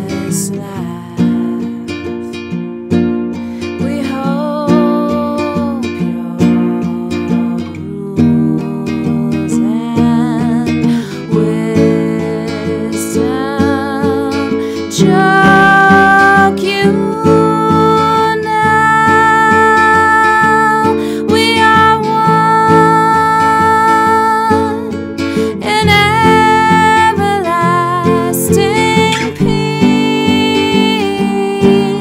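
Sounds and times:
woman singing wordlessly: 0.0s - 2.7s, 3.7s - 32.0s
nylon-string acoustic guitar: 0.0s - 32.0s.

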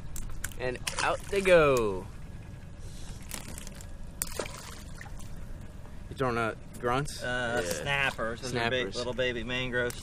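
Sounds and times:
water splashing and trickling: 0.2s - 2.0s, 3.2s - 5.8s.

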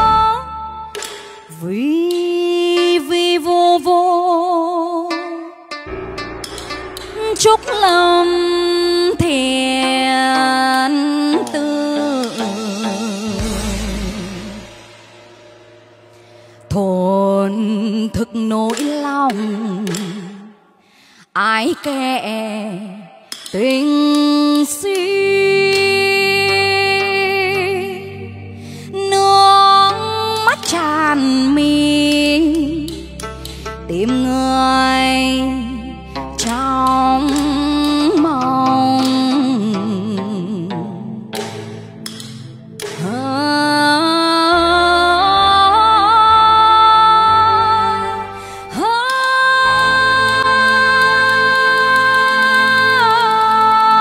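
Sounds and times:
woman singing with vibrato: 0.0s - 5.8s, 6.8s - 14.9s, 16.7s - 41.3s, 43.0s - 54.0s
backing track beat and bass: 5.1s - 15.2s.

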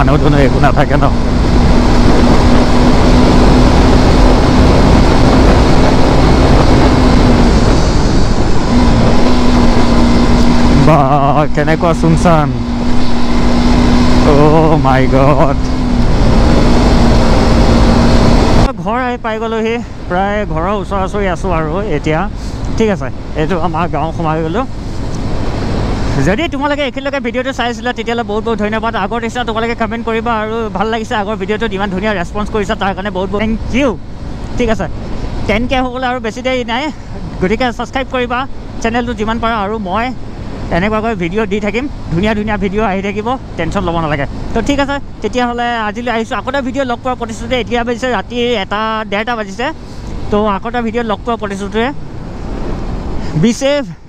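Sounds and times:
man talking: 0.0s - 1.2s, 10.7s - 12.7s, 14.2s - 15.8s, 18.6s - 24.7s, 26.1s - 52.0s, 53.2s - 54.0s
wind rush on microphone: 0.0s - 18.7s
motorcycle engine drone: 0.0s - 54.0s.

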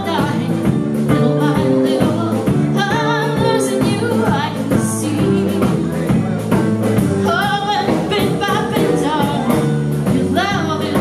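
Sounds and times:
woman singing: 0.0s - 6.1s, 6.9s - 11.0s
drums: 0.0s - 11.0s
electric bass: 0.0s - 11.0s
electric guitar: 0.0s - 11.0s.

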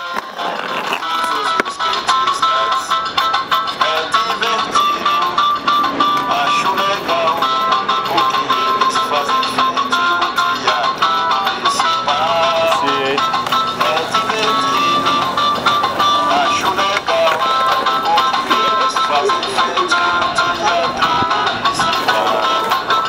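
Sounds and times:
amplified melody: 1.0s - 23.0s.

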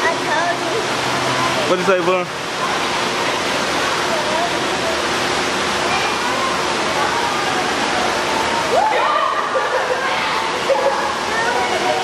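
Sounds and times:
running water rushing: 0.0s - 12.0s.

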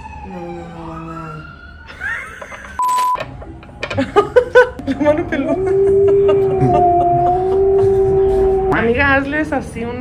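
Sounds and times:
censor beep: 2.8s - 3.2s
man crying out in pain: 5.5s - 8.7s.

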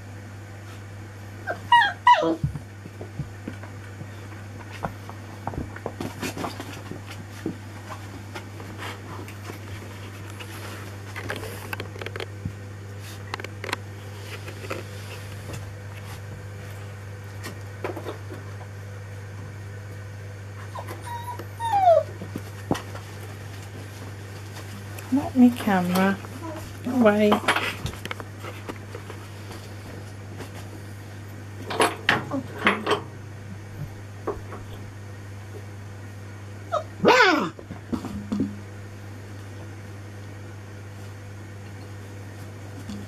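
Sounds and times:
puppy crying high-pitched: 1.5s - 2.4s, 20.7s - 22.1s, 36.7s - 37.6s
puppy squeaking: 1.5s - 2.4s, 20.7s - 22.1s.

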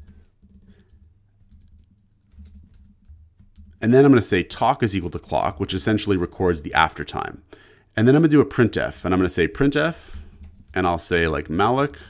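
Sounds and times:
soft keyboard typing: 0.0s - 4.0s, 9.6s - 11.0s.

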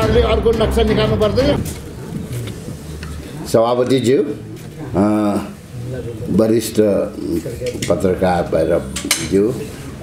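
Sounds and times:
man speaking: 0.0s - 1.8s.

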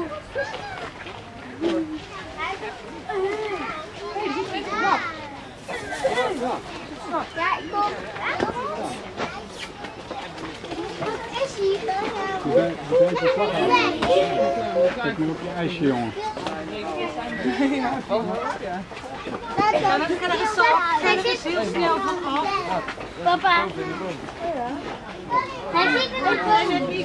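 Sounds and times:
faint voices talking: 0.0s - 27.0s
outdoor noise: 0.0s - 27.0s.

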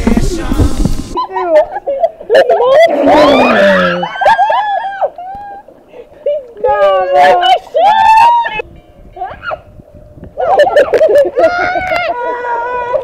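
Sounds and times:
girls shouting and squealing: 1.2s - 5.8s, 6.4s - 8.6s, 9.2s - 9.7s, 10.4s - 13.0s.

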